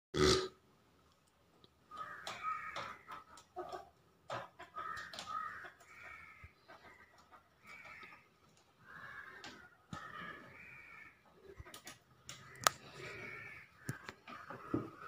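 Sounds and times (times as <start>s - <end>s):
plastic clicking and scraping: 1.1s - 6.0s, 11.5s - 13.2s.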